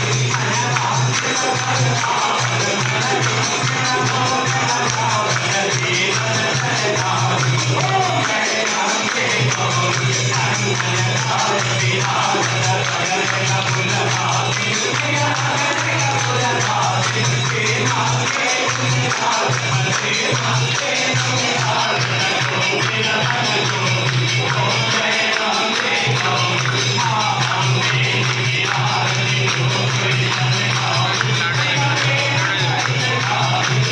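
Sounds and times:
person singing a hymn: 0.0 - 23.9
jingling metal percussion: 0.0 - 33.9.

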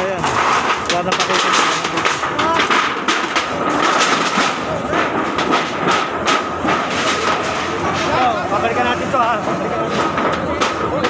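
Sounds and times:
wooden boards knocking and clattering: 0.0 - 11.0.

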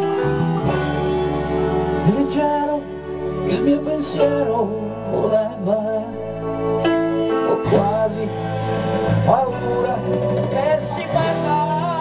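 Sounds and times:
acoustic guitar sliding lead: 0.0 - 12.0
live band playing: 0.0 - 12.0.

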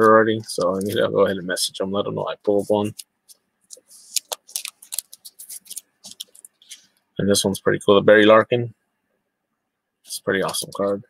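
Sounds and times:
cards flipped by hand: 2.8 - 6.9.

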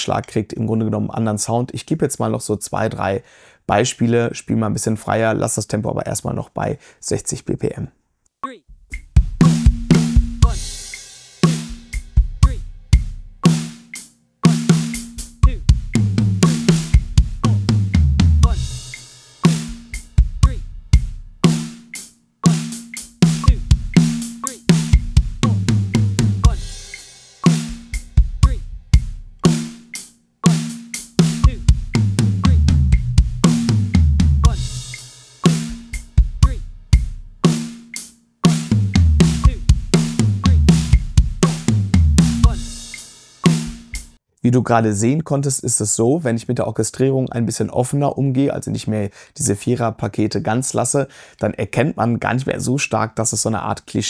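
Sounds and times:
drum kit groove and fills: 8.7 - 44.2.

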